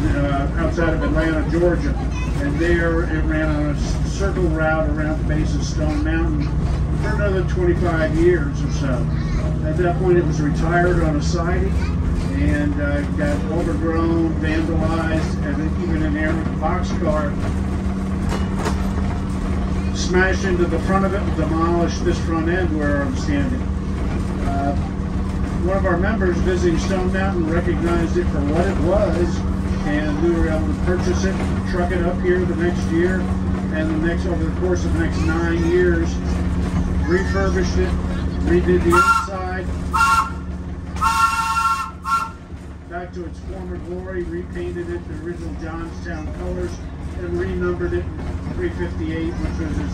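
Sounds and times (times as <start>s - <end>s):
electric trolley car humming: 0.0s - 49.9s
trolley air whistle chord: 38.9s - 42.5s.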